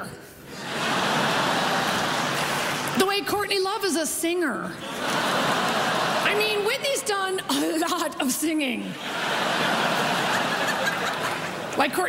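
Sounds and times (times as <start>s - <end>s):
audience laughing: 0.5s - 2.8s, 4.8s - 6.9s, 8.9s - 12.0s
audience applauding: 0.8s - 3.0s, 4.9s - 6.6s, 9.0s - 11.9s.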